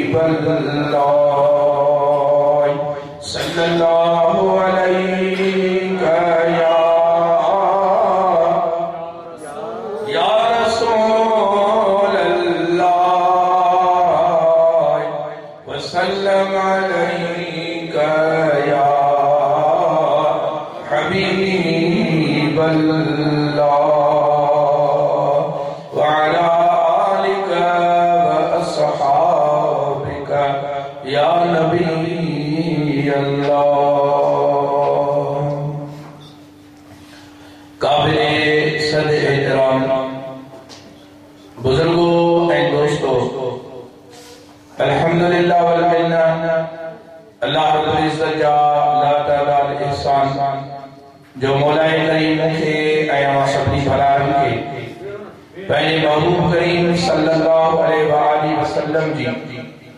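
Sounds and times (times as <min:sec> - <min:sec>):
man chanting into a microphone: 0:00.0 - 0:36.5, 0:37.3 - 0:59.9.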